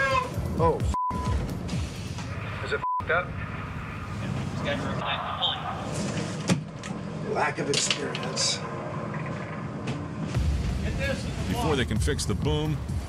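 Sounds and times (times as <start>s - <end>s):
background music: 0.0s - 5.8s, 10.2s - 13.0s
censor bleeps: 0.9s - 1.4s.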